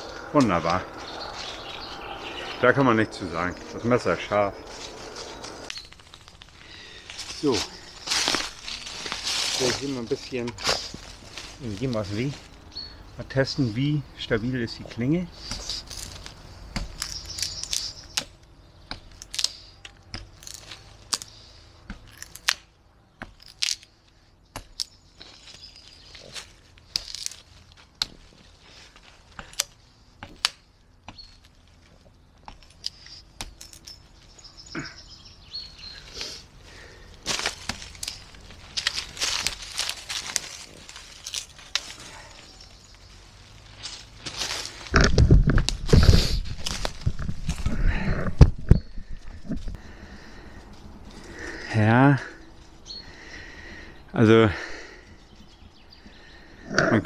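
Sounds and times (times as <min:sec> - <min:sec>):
knife blade cracking wood: 0:21.9 - 0:23.9.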